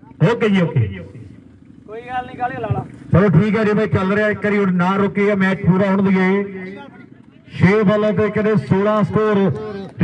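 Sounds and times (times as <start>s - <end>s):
faint background rumble: 0.0s - 10.0s
man speaking: 0.1s - 1.3s, 1.9s - 10.0s.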